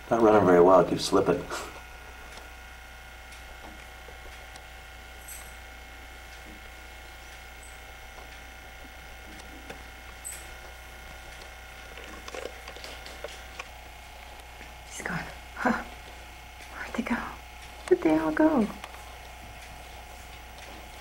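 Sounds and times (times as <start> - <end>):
camcorder tape mechanism whine: 0.1 - 16.8, 17.4 - 21.0
faint ticks and rustles: 1.3 - 21.0.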